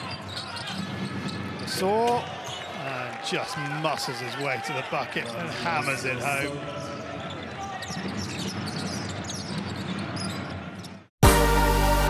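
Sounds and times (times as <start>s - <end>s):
shoe squeaks on court: 0.0s - 2.8s, 7.1s - 11.1s
arena noise: 0.0s - 11.1s.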